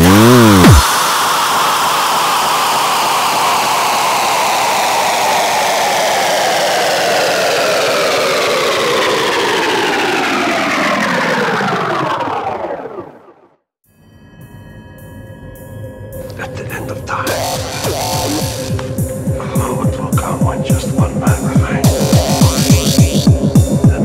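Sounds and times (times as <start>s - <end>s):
whirring synth drone: 0.0s - 13.4s, 17.0s - 24.0s.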